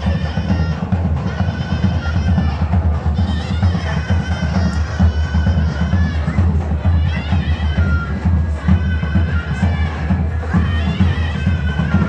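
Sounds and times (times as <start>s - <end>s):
low drumbeat: 0.0s - 12.0s
reedy wind instrument melody: 0.0s - 12.0s.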